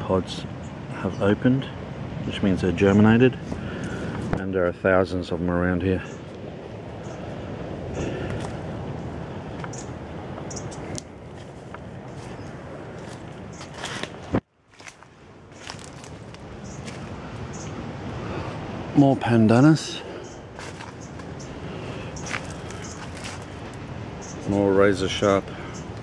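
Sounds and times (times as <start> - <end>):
footsteps crunching through dry leaves: 11.2 - 17.2, 20.6 - 21.3, 21.9 - 23.8
camera handling rustle: 13.0 - 15.0.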